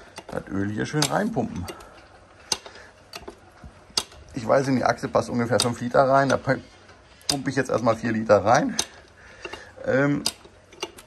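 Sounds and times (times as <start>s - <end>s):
oil pump can clicking: 0.0s - 6.6s, 7.2s - 11.0s.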